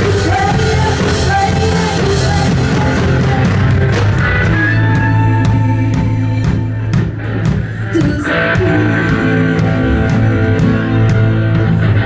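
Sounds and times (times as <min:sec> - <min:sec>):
bass guitar: 0:00.0 - 0:12.0
drum kit beat: 0:00.0 - 0:12.0
electric guitar: 0:00.0 - 0:12.0.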